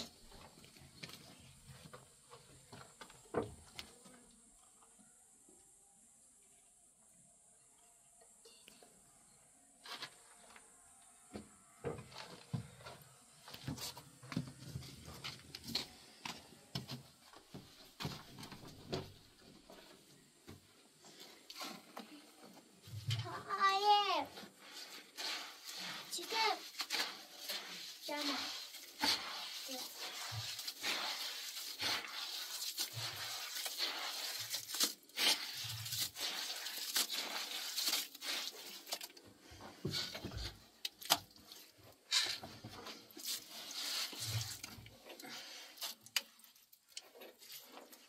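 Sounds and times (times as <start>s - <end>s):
wet mortar scraping in metal basin: 22.9s - 48.0s.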